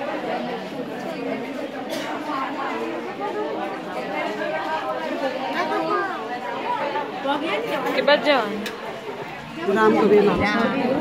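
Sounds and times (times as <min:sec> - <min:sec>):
overlapping chatter of people: 0:00.0 - 0:11.0.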